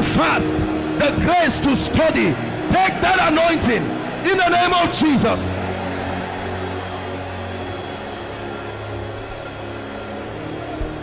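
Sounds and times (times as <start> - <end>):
keyboard sustained chords: 0.0 - 11.0.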